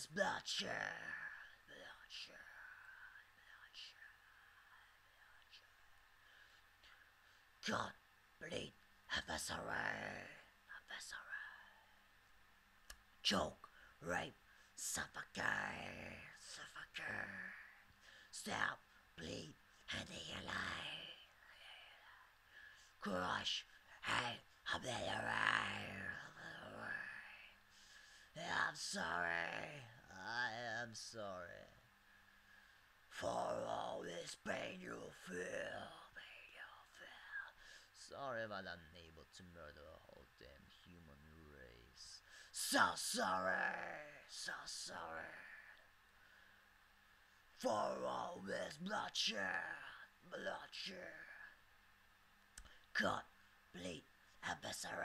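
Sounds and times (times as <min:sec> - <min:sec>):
man whispering: 0:00.0 - 0:12.1, 0:12.9 - 0:46.0, 0:47.5 - 0:51.6, 0:52.6 - 0:55.0.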